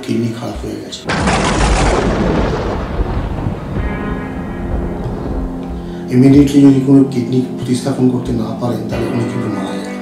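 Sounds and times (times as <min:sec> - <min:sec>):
deep thunder-like rumble: 0:01.1 - 0:05.6
held music notes: 0:02.9 - 0:10.0.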